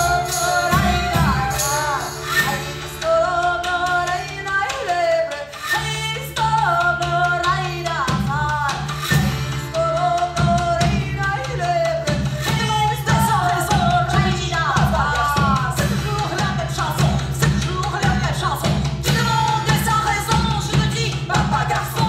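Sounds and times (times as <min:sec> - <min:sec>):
women singing: 0:00.0 - 0:22.0.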